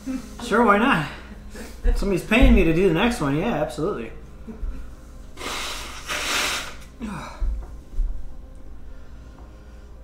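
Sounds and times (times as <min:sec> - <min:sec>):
man blowing his nose: 0:05.4 - 0:07.0.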